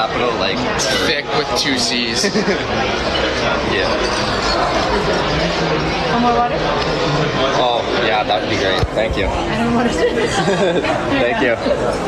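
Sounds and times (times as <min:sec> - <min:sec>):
restaurant background chatter: 0:00.0 - 0:12.0.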